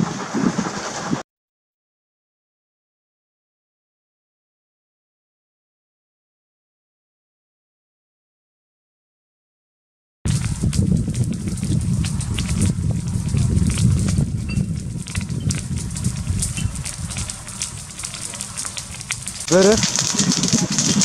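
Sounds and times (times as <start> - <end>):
fire low rumble: 0.0 - 1.2, 10.3 - 21.0
wildfire crackling and popping: 10.3 - 21.0.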